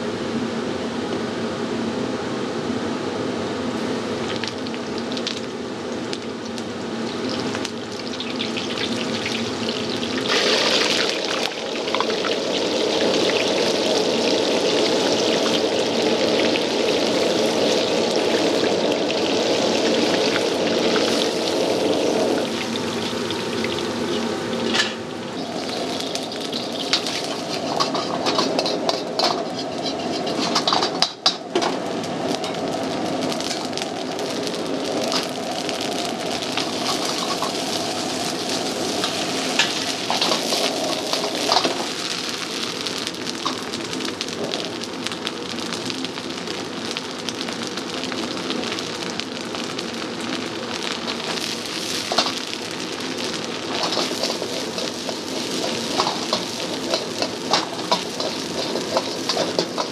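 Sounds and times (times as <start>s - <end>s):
oil sizzling in a wok: 3.7s - 59.9s.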